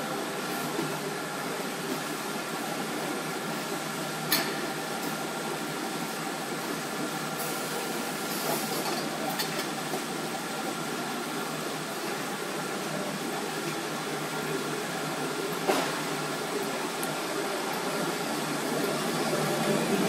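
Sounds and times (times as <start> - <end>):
machine humming: 10.4 - 20.0.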